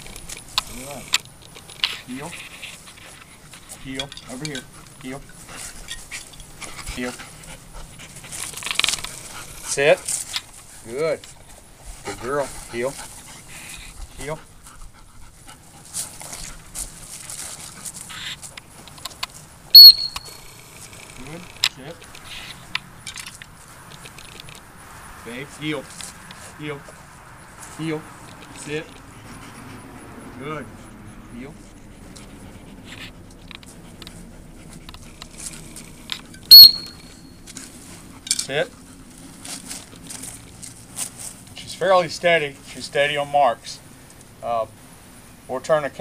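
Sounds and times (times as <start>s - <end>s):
dog panting: 0.0s - 19.5s, 25.8s - 43.2s
dog whistle blast: 19.7s - 20.4s, 36.5s - 37.2s.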